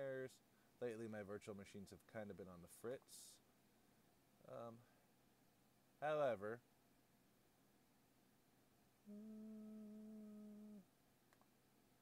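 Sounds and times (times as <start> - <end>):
man humming: 9.0 - 10.9.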